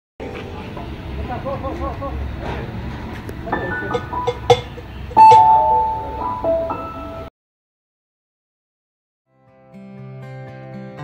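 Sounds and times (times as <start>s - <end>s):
electronic keyboard notes: 3.4s - 7.3s.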